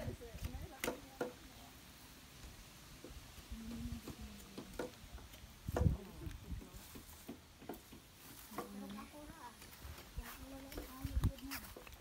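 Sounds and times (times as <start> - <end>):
people talking: 0.0 - 1.8, 3.5 - 4.8, 5.7 - 7.1, 8.4 - 11.9.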